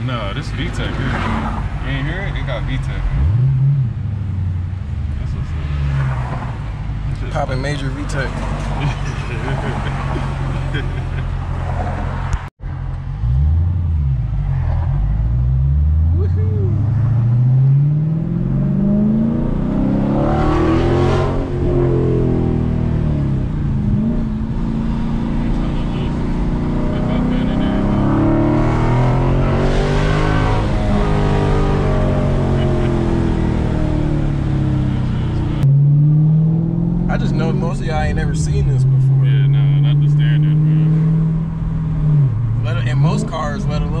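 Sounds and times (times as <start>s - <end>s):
car engine revving: 0.0s - 44.0s.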